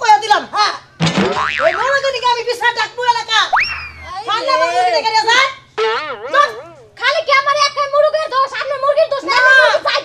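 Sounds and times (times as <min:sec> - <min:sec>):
cartoon boing sound effect: 0:01.1 - 0:02.0, 0:03.5 - 0:04.2, 0:05.8 - 0:06.9
women speaking loudly: 0:01.7 - 0:10.0
sharp upward swoop effect: 0:03.5 - 0:04.3.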